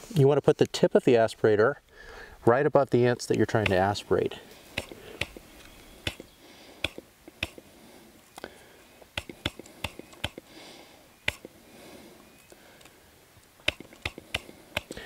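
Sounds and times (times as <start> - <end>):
sharp little clicks: 3.3 - 3.9, 4.7 - 7.7, 8.3 - 10.5, 11.2 - 11.6, 12.4 - 15.0.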